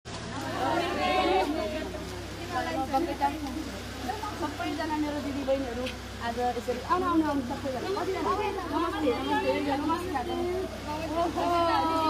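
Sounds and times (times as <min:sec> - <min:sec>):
women chattering: 0:00.2 - 0:12.0.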